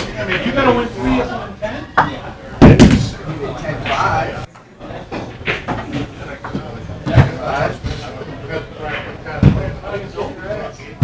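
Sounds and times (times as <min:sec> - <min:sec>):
indistinct talk: 0:00.0 - 0:11.0
heavy thumps: 0:02.6 - 0:03.2.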